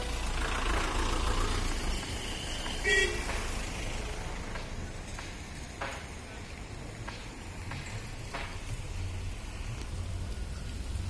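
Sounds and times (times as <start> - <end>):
road traffic rumble: 0.0 - 11.0
short vehicle horn toot: 2.8 - 3.4.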